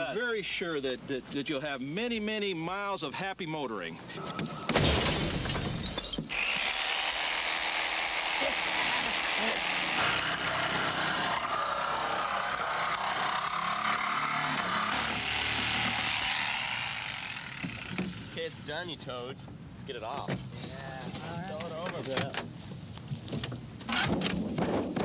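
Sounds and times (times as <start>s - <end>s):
car window glass smashing: 4.6s - 6.3s
electric saw cutting sheet metal: 6.3s - 18.7s.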